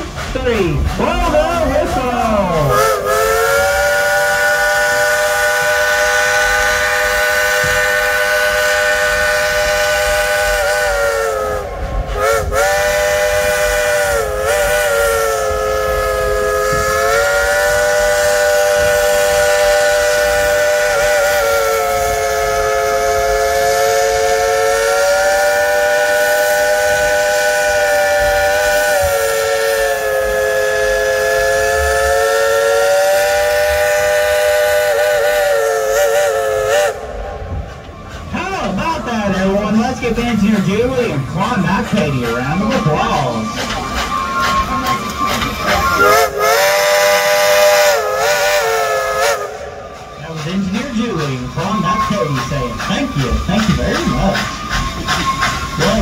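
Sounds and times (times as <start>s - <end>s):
steam locomotive chime whistle: 2.6s - 38.8s, 41.1s - 56.0s.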